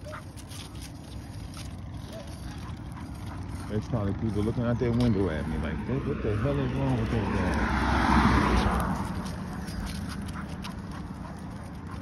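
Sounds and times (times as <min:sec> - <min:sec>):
road traffic rumble: 0:00.0 - 0:12.0
wind: 0:00.0 - 0:12.0.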